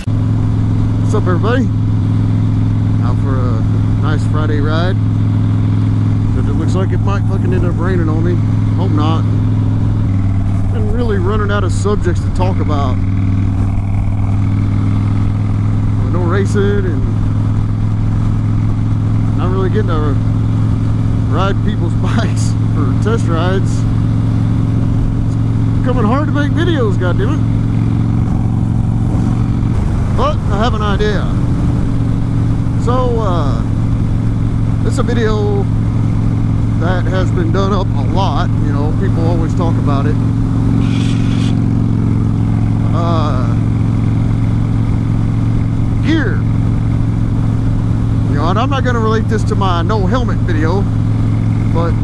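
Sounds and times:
motorcycle engine rumbling: 0.0 - 52.0.

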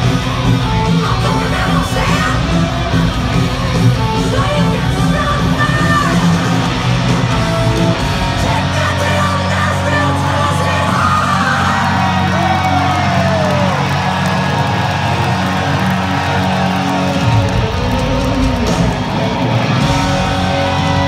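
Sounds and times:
bass notes: 0.0 - 21.0
live hard rock band: 0.0 - 21.0.

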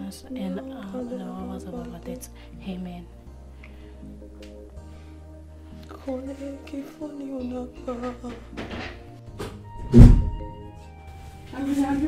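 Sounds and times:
soft background music: 0.0 - 12.0
deep heavy thud: 9.8 - 10.5.

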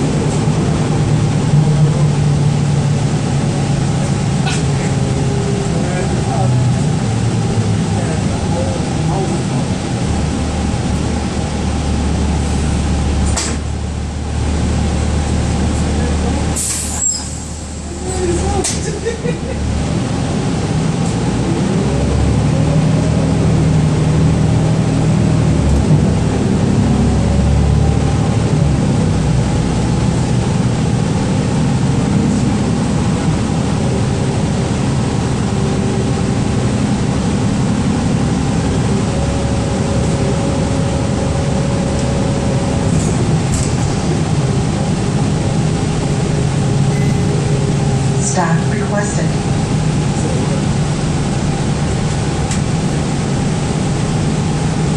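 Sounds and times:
bus drivetrain whine: 0.0 - 54.9
air brakes hissing: 16.6 - 17.9.

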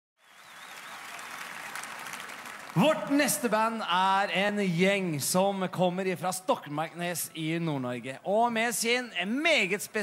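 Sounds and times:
audience applause: 0.2 - 3.4.

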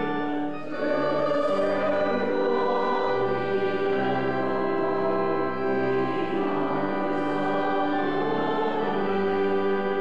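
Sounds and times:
congregation singing a hymn: 0.0 - 10.0
instrumental accompaniment: 0.0 - 10.0.

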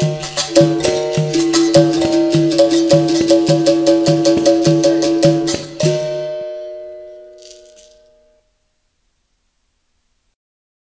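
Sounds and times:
berimbau notes ringing: 0.0 - 9.0
basket rattle shake: 7.4 - 8.1.

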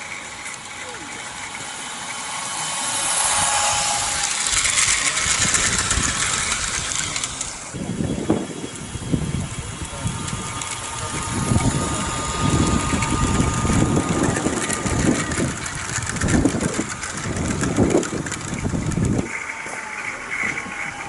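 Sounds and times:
faint steady whine: 0.0 - 21.0
model train wheels rumbling and clicking: 0.0 - 21.0.

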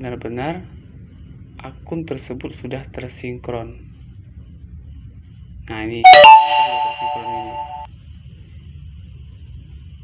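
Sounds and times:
electronic chime: 6.1 - 7.9.

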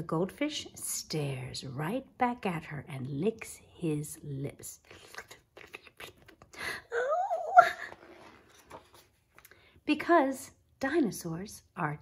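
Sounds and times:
book page turning: 7.7 - 9.5.

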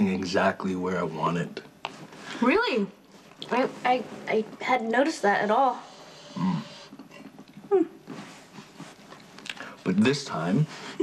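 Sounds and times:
person humming hmm: 6.3 - 6.8, 7.6 - 8.0.

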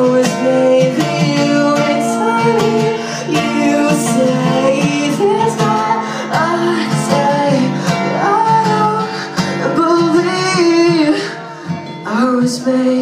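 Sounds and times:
acoustic guitar: 0.0 - 13.0
person singing: 0.0 - 13.0.

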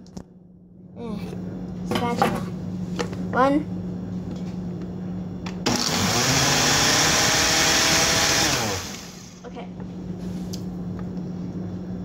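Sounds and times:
blender running: 5.6 - 9.4.

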